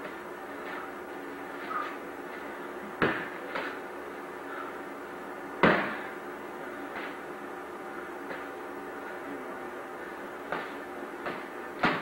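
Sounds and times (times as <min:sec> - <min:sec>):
padded sticks smacking: 0:10.5 - 0:12.0.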